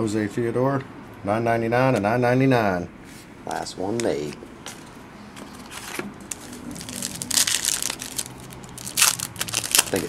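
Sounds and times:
foil wrapper crinkling: 5.6 - 10.0.

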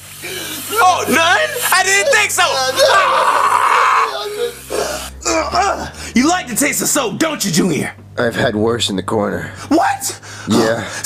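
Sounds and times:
person strained raspy cry: 0.2 - 6.0.

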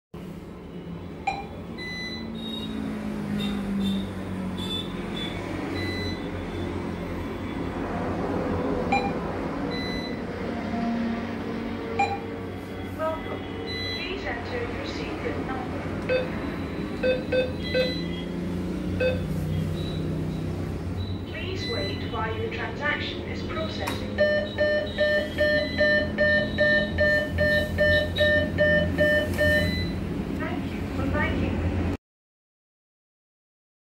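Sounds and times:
atm button beeps: 1.3 - 2.7, 8.9 - 10.2, 12.0 - 12.3, 13.7 - 14.1, 16.0 - 18.2, 19.0 - 22.1, 24.0 - 30.0.

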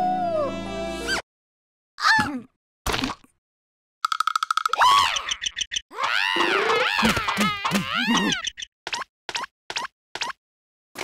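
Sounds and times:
cartoon character squealing: 5.9 - 8.4.

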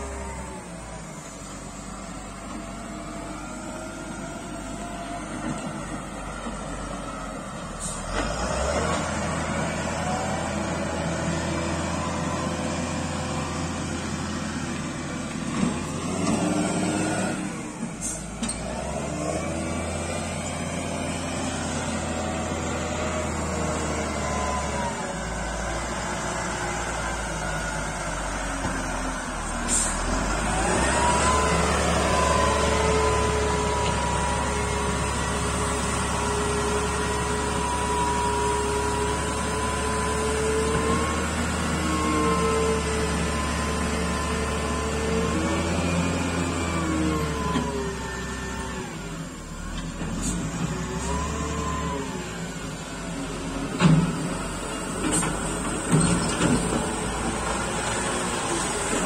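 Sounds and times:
diesel engine running and revving: 0.0 - 59.0
engine whine: 0.0 - 59.0.

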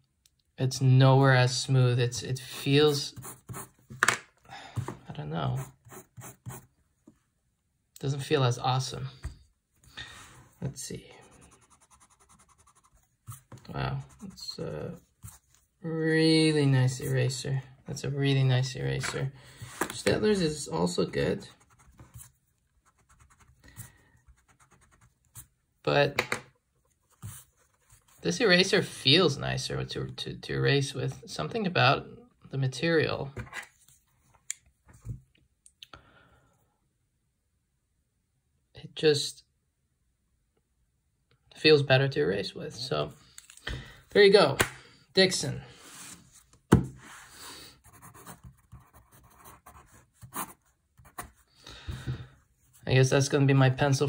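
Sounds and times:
pencil scratching on paper: 3.1 - 3.8, 5.6 - 6.7, 11.2 - 14.4, 21.5 - 23.6, 24.2 - 25.5, 47.8 - 51.4.

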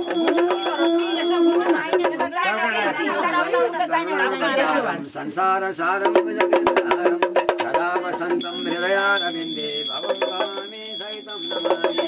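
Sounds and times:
small hand bell ringing: 0.0 - 2.0, 8.4 - 12.0.

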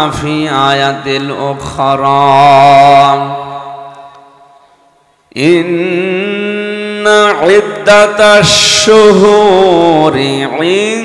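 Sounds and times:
man's melodic recitation over loudspeaker: 0.0 - 11.0.

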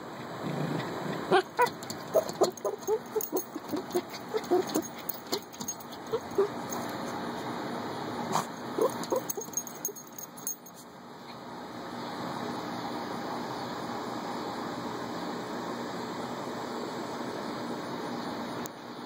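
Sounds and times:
dog scrabbling in dirt: 1.6 - 6.2.

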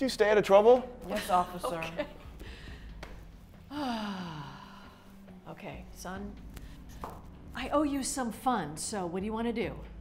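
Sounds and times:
woman sighing: 3.7 - 5.1.

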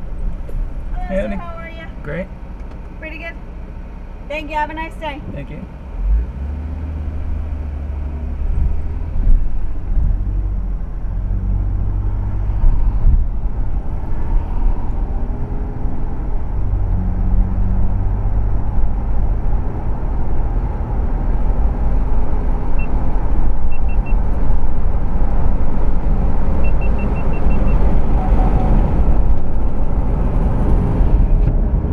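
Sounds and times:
car engine and road noise: 0.0 - 31.9.

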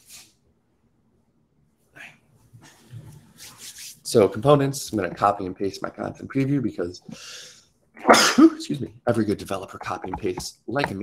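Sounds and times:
faint rubbing and rustling: 2.4 - 5.4.

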